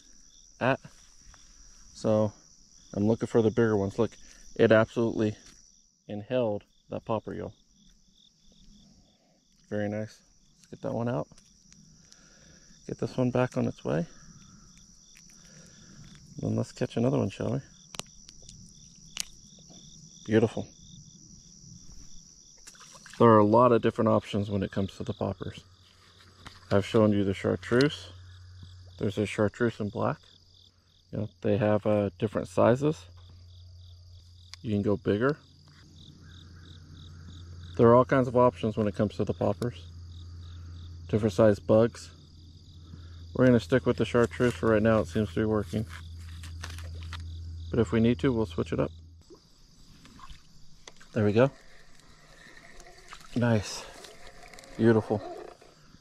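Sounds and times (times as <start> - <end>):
insect chirps: 0.0 - 56.0
insect trill: 0.0 - 56.0
low hum: 35.3 - 56.0.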